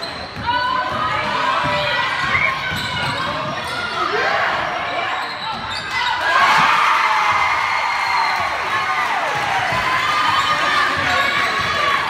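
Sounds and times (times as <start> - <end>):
sneakers squeaking: 0.0 - 7.5, 9.3 - 12.0
voices of players and crowd: 0.0 - 12.0
basketball bouncing: 9.2 - 12.0.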